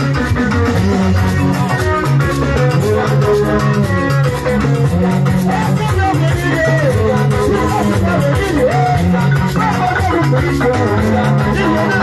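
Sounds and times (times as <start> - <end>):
bass guitar: 0.0 - 12.0
drum kit: 0.0 - 12.0
electric guitar melody: 0.0 - 12.0.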